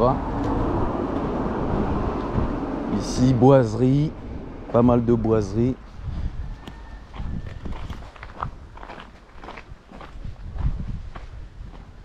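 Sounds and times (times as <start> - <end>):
low microphone rumble: 0.0 - 8.9
footsteps on gravel: 7.1 - 12.0.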